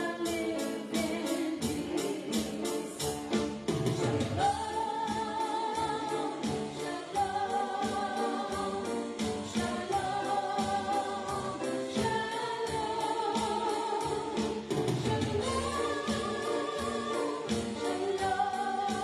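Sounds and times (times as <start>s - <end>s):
woman singing into a microphone: 0.0s - 3.2s, 4.2s - 19.0s
piano accompaniment: 0.0s - 19.0s
steady drum beat: 0.0s - 19.0s.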